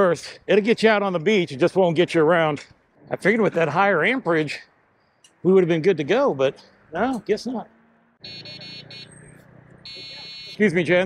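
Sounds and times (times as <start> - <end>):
electric horn buzzing: 9.8 - 10.6.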